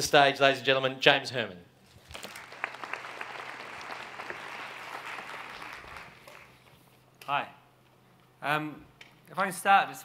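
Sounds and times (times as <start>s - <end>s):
audience applauding: 2.0s - 6.7s.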